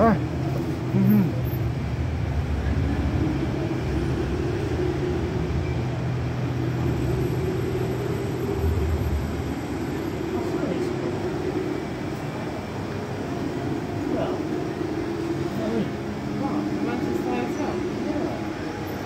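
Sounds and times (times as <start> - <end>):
electric train hum: 0.0 - 19.0
station background noise: 0.0 - 19.0.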